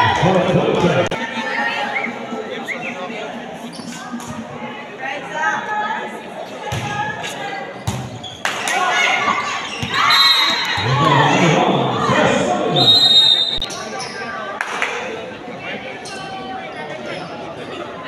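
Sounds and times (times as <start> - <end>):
people shouting in a gym: 8.6 - 14.3
referee's whistle blasts: 12.8 - 13.7.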